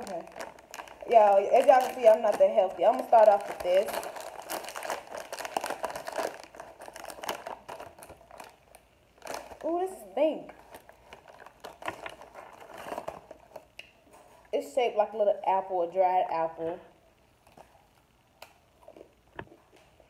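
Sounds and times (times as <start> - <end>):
plastic snack bag crinkling: 0.0 - 14.4.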